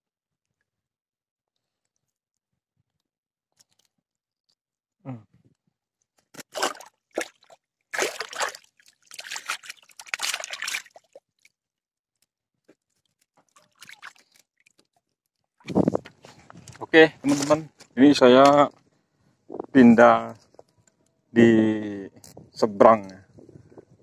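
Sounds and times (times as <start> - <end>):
water sloshing and splashing: 6.2 - 11.7, 12.6 - 17.6.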